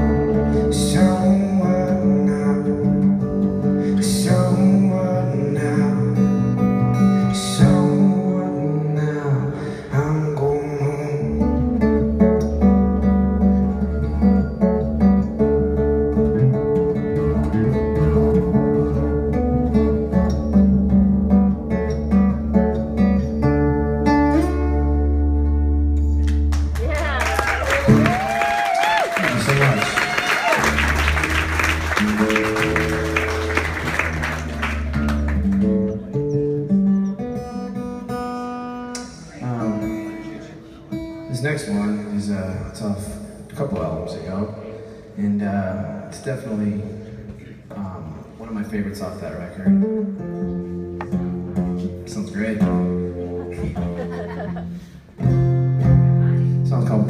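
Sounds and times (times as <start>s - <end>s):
acoustic guitar playing: 0.0s - 28.6s, 29.3s - 57.0s
audience applause and cheering: 26.2s - 35.8s
high whoop: 26.8s - 30.9s.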